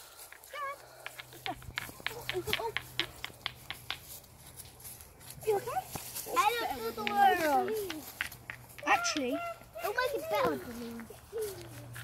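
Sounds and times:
dry leaves and twigs crackling: 0.0 - 12.0.

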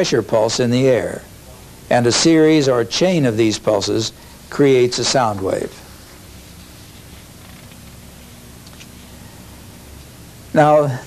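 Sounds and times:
low hum with hiss: 0.0 - 11.0.

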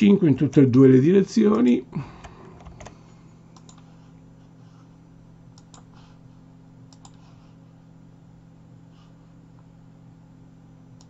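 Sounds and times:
faint low hum: 0.0 - 11.0
keyboard and mouse clicks: 2.5 - 3.0, 3.6 - 3.9, 5.6 - 5.9, 6.9 - 7.2.

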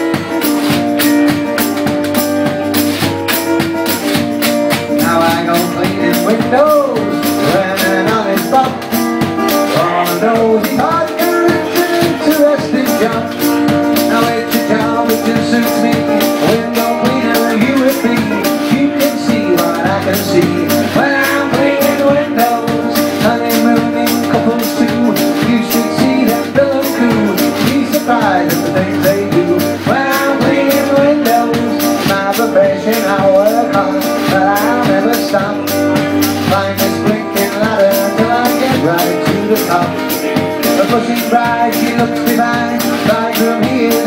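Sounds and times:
acoustic guitar chords: 0.0 - 44.0.

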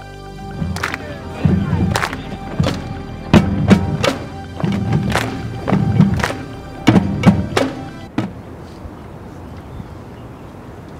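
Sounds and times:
marching drums booming: 0.5 - 8.4.

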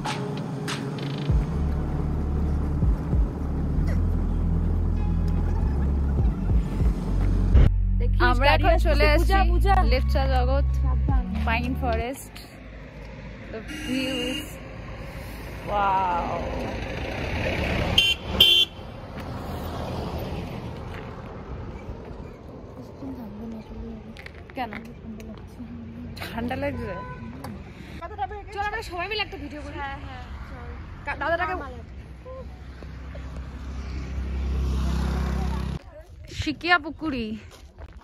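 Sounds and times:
car rumble approaching: 0.8 - 13.6, 14.6 - 26.7
car horn beeps: 13.6 - 14.6, 18.0 - 18.8, 26.7 - 27.5.

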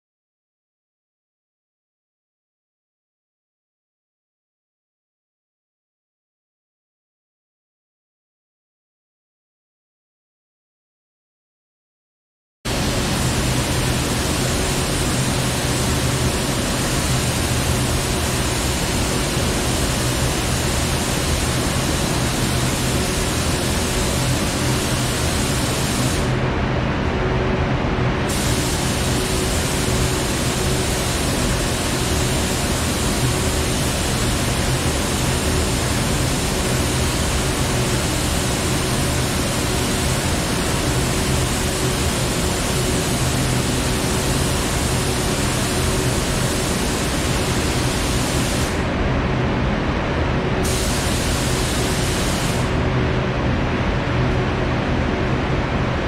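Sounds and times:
paint spray gun hissing: 12.7 - 26.4, 28.3 - 48.9, 50.6 - 52.8
ventilation fans rushing: 12.7 - 56.0.

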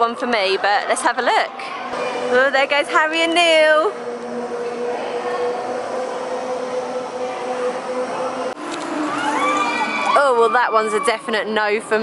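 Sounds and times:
constant hum: 0.0 - 12.0.

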